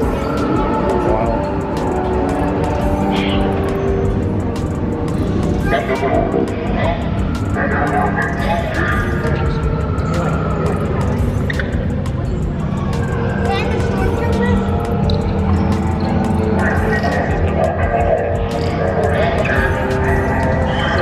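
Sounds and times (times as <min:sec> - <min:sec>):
deep steady rumble: 0:00.0 - 0:21.0
indistinct voices: 0:00.0 - 0:21.0
music over sound system: 0:00.0 - 0:21.0.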